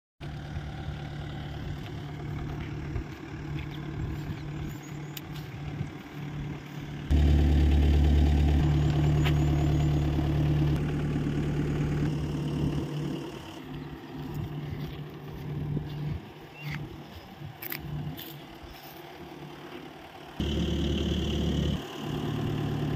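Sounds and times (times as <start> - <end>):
diesel engine idling: 0.2 - 22.9.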